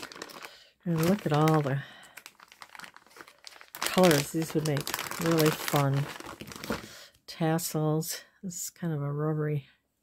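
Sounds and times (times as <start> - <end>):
plastic bag crinkling: 0.0 - 7.1.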